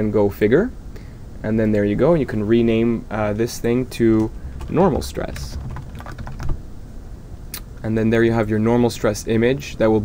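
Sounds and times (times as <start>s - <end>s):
computer keyboard typing: 4.5s - 6.6s.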